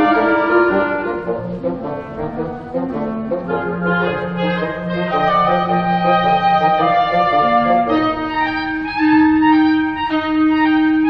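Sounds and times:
clarinets and bassoons playing: 0:00.0 - 0:11.0.

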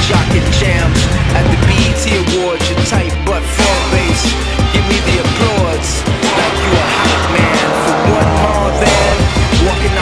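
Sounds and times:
hip hop music: 0:00.0 - 0:10.0
car engine revving: 0:03.3 - 0:10.0.

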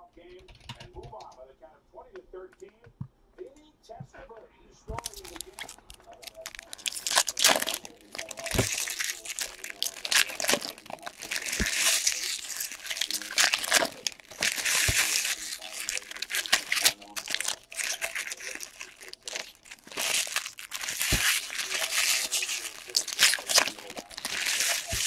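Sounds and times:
foil wrappers tearing and crinkling: 0:04.9 - 0:25.0.

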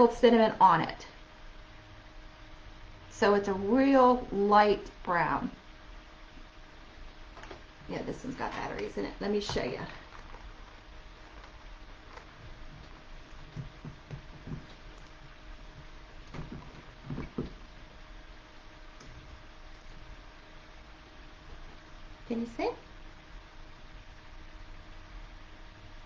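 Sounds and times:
low room hum: 0:00.0 - 0:26.0
handling noises: 0:07.3 - 0:17.8
soft knocks: 0:13.4 - 0:14.8, 0:16.3 - 0:17.6.

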